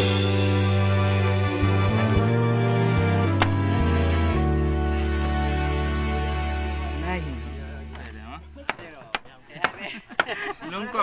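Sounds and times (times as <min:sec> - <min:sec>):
background music: 0:00.0 - 0:09.2
knife chopping on wooden board: 0:08.7 - 0:10.3.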